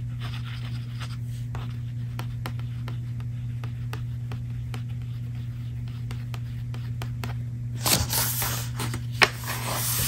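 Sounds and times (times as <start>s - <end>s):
scratching on paper: 0.0s - 10.0s
steady low hum: 0.0s - 10.0s.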